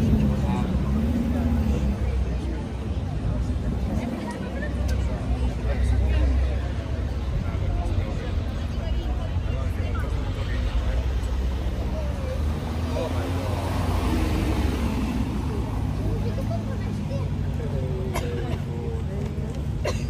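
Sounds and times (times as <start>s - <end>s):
people talking: 0.0s - 20.0s.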